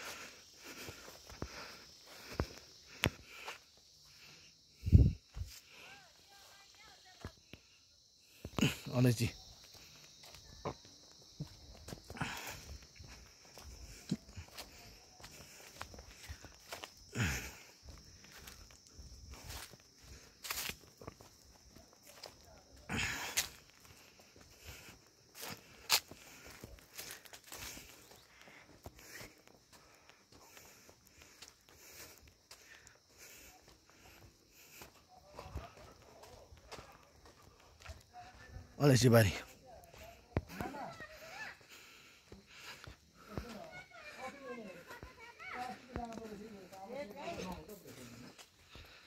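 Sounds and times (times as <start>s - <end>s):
faint footsteps: 9.4s - 49.0s
footsteps through grass: 18.0s - 21.4s.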